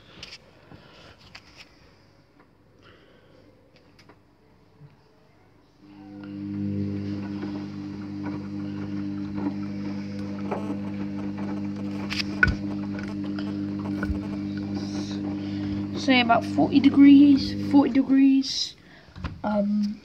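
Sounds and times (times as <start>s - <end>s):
washing machine motor hum: 5.8s - 18.7s.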